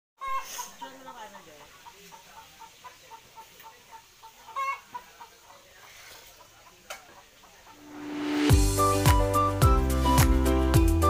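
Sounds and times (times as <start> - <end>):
chicken clucking: 0.2 - 8.5.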